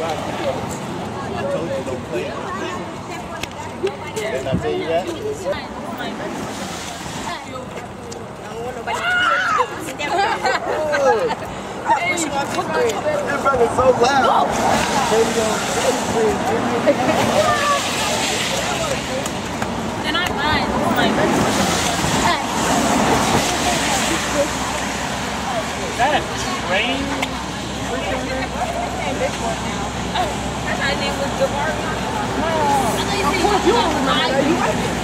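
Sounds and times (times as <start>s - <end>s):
group of people chattering: 0.0s - 35.0s
rain and traffic hiss: 0.0s - 35.0s
girls talking: 0.8s - 6.5s, 7.2s - 15.1s, 16.3s - 35.0s
girls laughing: 9.1s - 12.1s, 16.8s - 17.8s.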